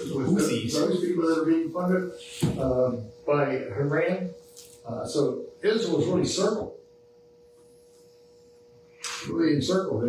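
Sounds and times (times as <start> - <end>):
high-pitched hum: 0.0 - 10.0.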